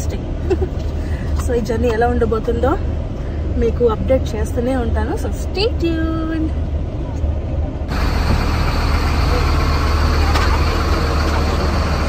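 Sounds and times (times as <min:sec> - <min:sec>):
broad rush of noise: 0:00.0 - 0:12.0
bus engine rumble: 0:00.0 - 0:12.0.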